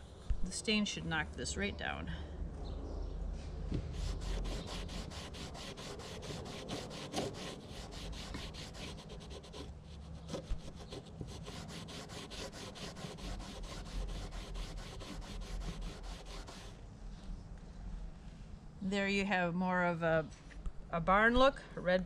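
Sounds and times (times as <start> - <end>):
cloth rag rubbing on rough wood: 3.8 - 9.7.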